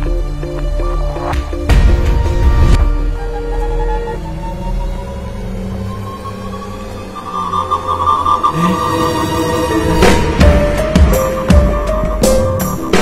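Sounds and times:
tense ominous film music: 0.0s - 13.0s.

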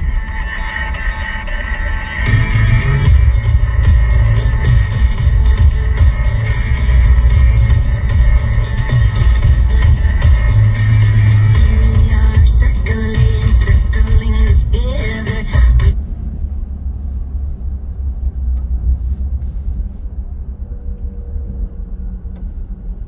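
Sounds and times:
band music on car radio: 0.0s - 17.6s.

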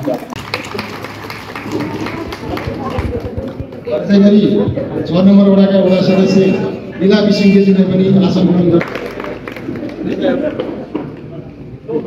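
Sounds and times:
audience clapping: 0.0s - 4.1s, 8.8s - 11.2s
people talking: 1.6s - 8.8s.

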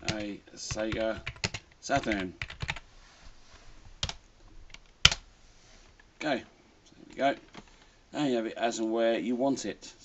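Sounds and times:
computer keyboard clicks: 0.9s - 2.8s.

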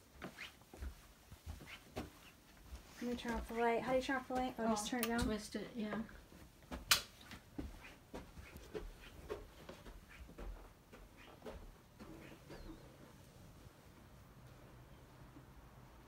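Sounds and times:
footsteps on carpet: 0.0s - 14.1s.

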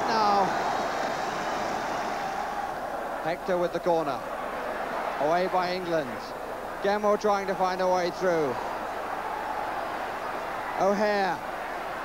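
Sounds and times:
football crowd cheering: 0.0s - 12.0s.

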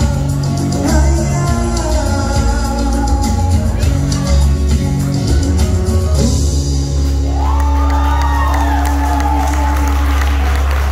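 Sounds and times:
crowd cheering and whooping: 5.6s - 10.9s.

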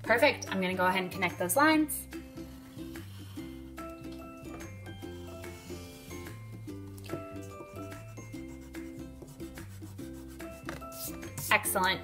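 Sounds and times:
soft background music: 0.0s - 12.0s
pencil scratching on paper: 2.2s - 3.8s, 5.1s - 6.5s, 7.3s - 11.5s.

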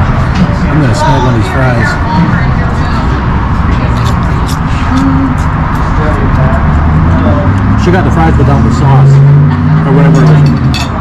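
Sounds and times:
faint voices: 0.0s - 11.0s
road traffic rumble: 0.0s - 11.0s.

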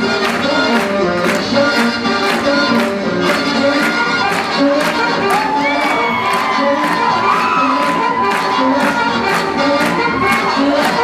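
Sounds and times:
swing jazz music: 0.0s - 11.0s
crowd cheering and whooping: 5.2s - 9.0s.

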